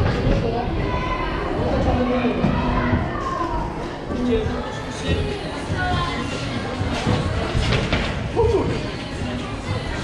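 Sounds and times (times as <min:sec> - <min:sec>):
rumble of large hall: 0:00.0 - 0:10.0.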